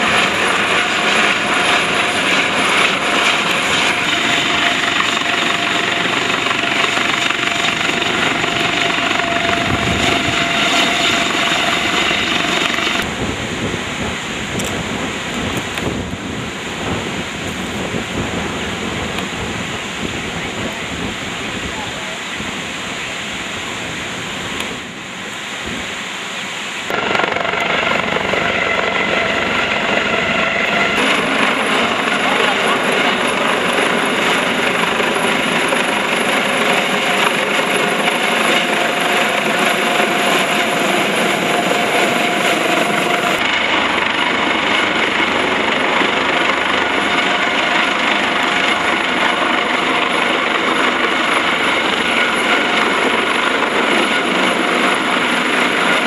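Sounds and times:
helicopter hovering overhead: 0:00.0 - 0:25.4, 0:26.4 - 0:56.0
outdoor noise: 0:00.0 - 0:56.0.

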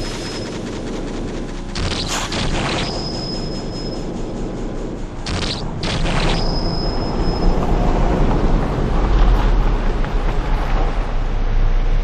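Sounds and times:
thin high whine: 0:00.0 - 0:07.9
loud rumbling noise: 0:00.0 - 0:12.0.

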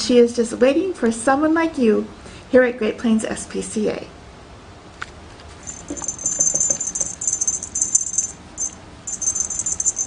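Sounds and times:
small jingle bell jingling: 0:05.6 - 0:10.0.

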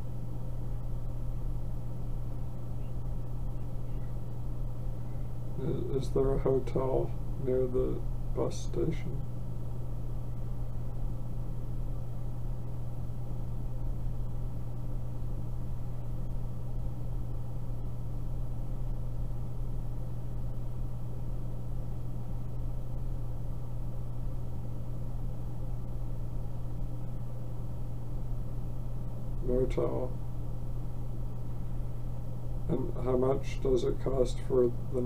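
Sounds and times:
low hum: 0:00.0 - 0:35.0
even haze of noise: 0:01.4 - 0:11.3, 0:29.0 - 0:35.0.

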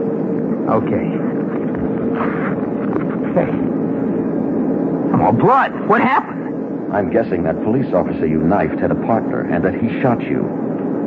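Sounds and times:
airliner engines droning: 0:00.0 - 0:11.0
faint even hum: 0:00.0 - 0:11.0.

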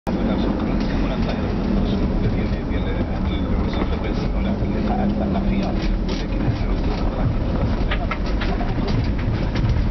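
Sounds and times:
voices from car radio: 0:00.1 - 0:09.6
engine and road rumble: 0:00.1 - 0:09.9.

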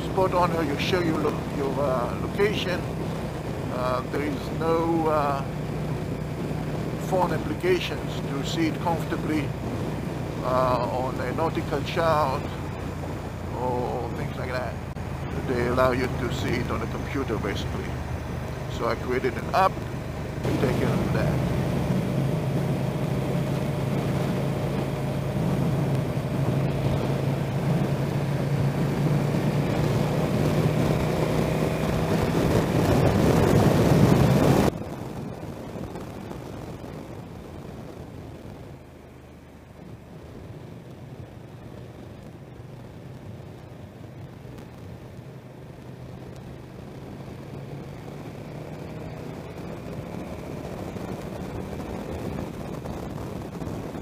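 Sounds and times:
vehicle engine hum: 0:00.0 - 0:54.0
wind noise: 0:00.0 - 0:54.0.

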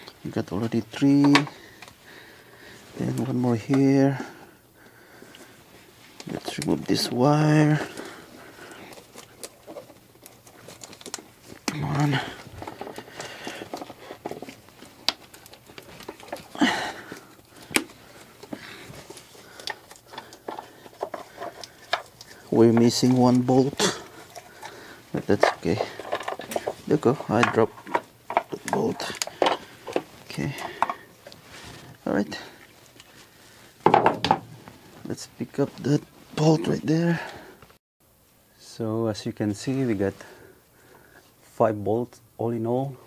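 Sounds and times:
scraping rustle: 0:05.4 - 0:33.8
clicks and knocks of parts: 0:08.9 - 0:31.4.

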